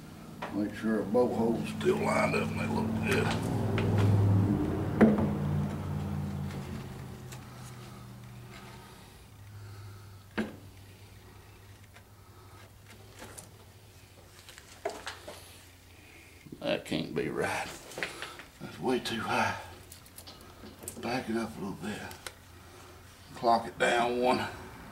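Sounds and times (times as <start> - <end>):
low hum: 0.0 - 14.1.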